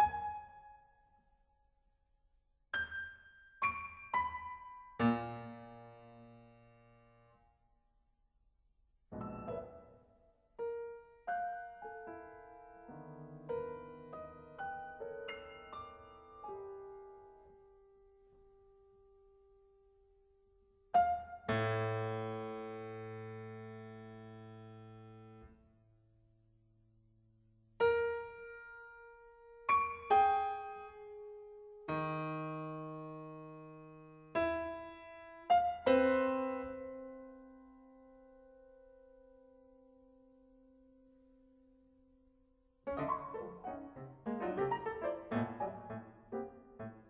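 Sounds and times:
solo piano: 0.0s - 1.0s, 2.7s - 7.4s, 9.1s - 20.0s, 20.9s - 25.6s, 27.8s - 40.0s, 42.8s - 47.0s
piano chord ringing: 42.9s - 47.0s.

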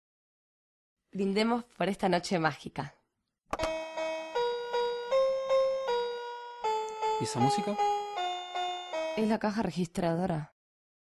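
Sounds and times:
toy chiming melody: 3.6s - 9.4s.

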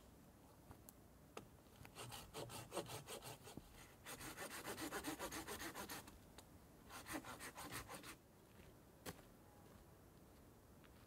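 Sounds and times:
hand saw cutting branch: 1.9s - 6.1s, 6.9s - 8.2s.

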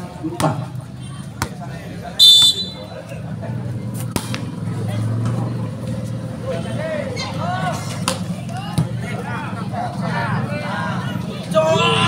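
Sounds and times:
low hum of outdoor crowd: 0.0s - 12.0s.

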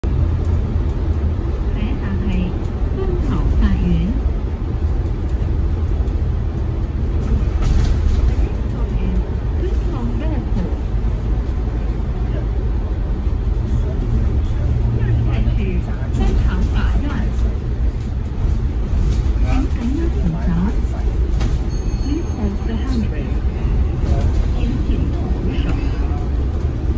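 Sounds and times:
bus cabin rumble: 0.0s - 26.9s
recorded voice announcement: 19.5s - 21.1s.

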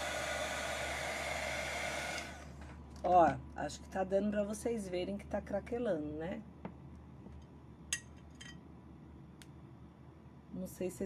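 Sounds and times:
low steady hum: 2.1s - 11.0s.

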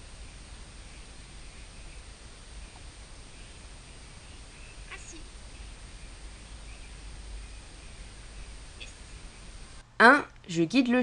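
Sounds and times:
faint bird calls: 0.0s - 9.8s.

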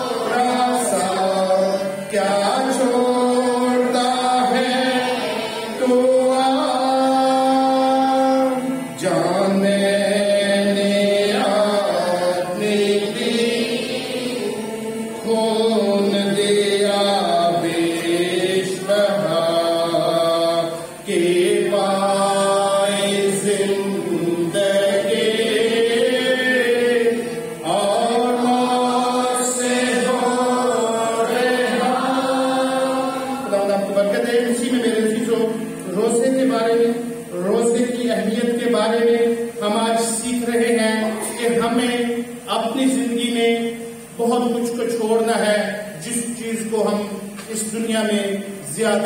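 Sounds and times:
man singing a hymn: 0.0s - 13.8s, 14.4s - 49.0s.

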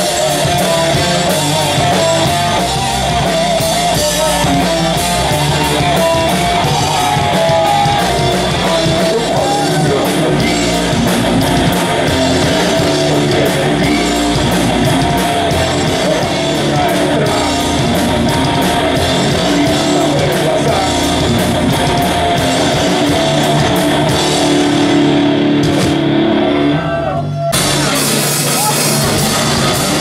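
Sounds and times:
rapid drumming on drum kit: 0.0s - 26.1s, 27.6s - 30.0s
bass guitar: 0.0s - 30.0s
electric guitars: 0.0s - 30.0s.

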